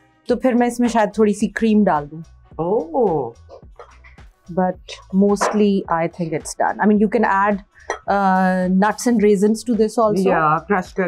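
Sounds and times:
woman talking: 0.3 - 3.4, 4.5 - 11.0.

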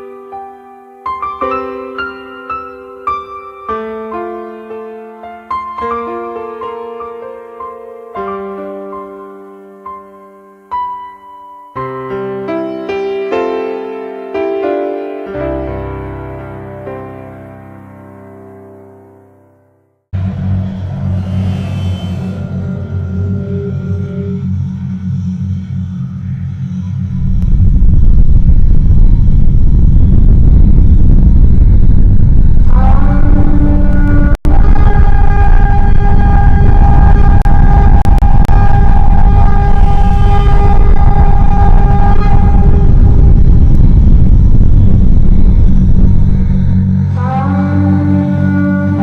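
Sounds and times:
blaring horn-like chord: 20.2 - 25.9, 32.6 - 49.0
deep cinematic rumble: 20.2 - 49.0.

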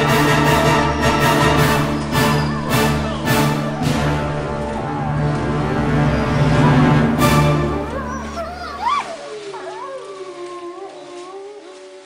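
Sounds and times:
dog howling: 1.8 - 12.0.

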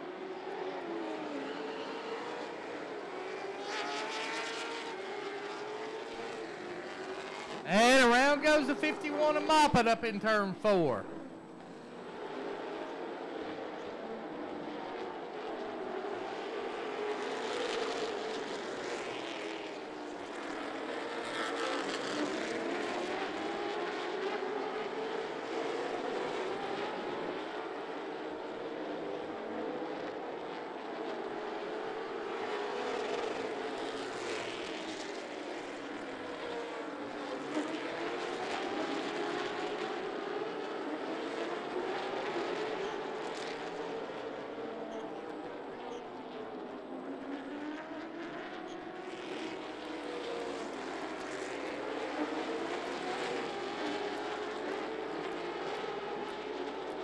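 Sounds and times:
race car engines on oval track: 0.0 - 57.0.

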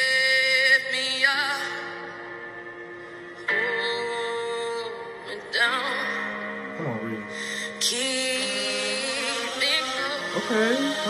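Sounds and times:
woman singing a slow ballad: 0.0 - 2.3, 3.4 - 6.7, 7.4 - 11.0
soft musical accompaniment: 0.0 - 11.0.

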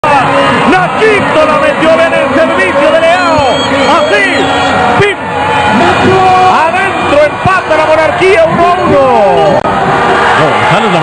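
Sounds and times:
football tv commentary: 0.0 - 11.0
stadium crowd noise: 0.0 - 11.0.

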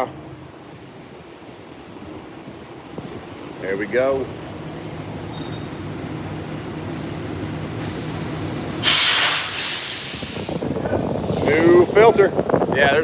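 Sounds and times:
low mechanical hum: 0.0 - 13.0
loud hiss: 7.8 - 11.9.

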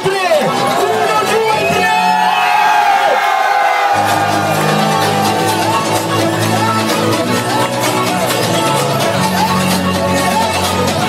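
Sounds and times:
crowd cheering and whooping: 0.6 - 9.5
house music beat and bass: 4.0 - 11.0
house music synth tones: 4.0 - 11.0.

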